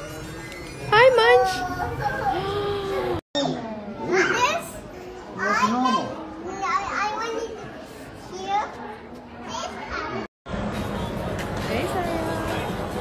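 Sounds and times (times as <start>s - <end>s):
children chattering and calling: 0.9s - 10.3s.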